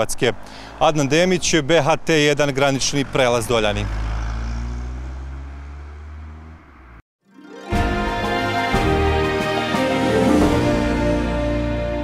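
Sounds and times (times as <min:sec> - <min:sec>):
vehicle engine humming: 0:00.4 - 0:07.0.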